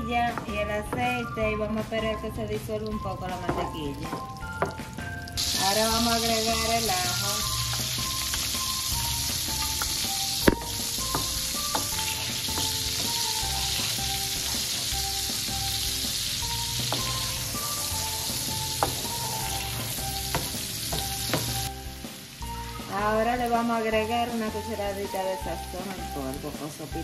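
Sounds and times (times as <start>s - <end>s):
soft music melody: 0.0s - 27.0s
garlic sizzling in a frying pan: 3.5s - 27.0s.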